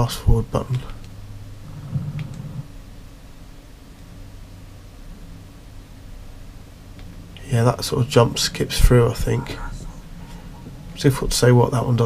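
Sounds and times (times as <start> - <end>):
low steady hum: 0.0 - 12.0
low rumble: 4.6 - 12.0.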